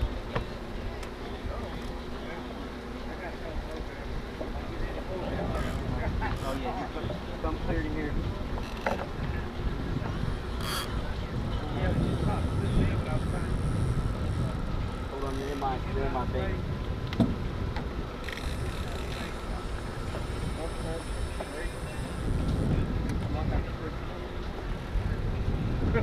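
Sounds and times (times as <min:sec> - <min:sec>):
faint voices: 0:00.0 - 0:16.9, 0:17.9 - 0:26.0
wind buffeting microphone: 0:03.6 - 0:26.0.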